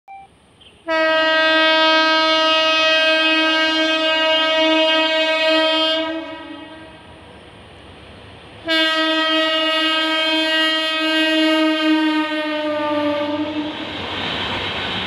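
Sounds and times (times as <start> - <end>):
locomotive horn blast: 0.6 - 7.1, 8.6 - 13.9.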